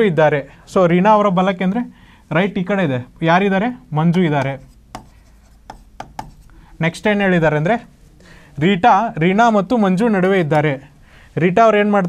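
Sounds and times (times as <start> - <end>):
stylus tapping and scraping screen: 4.1 - 8.2.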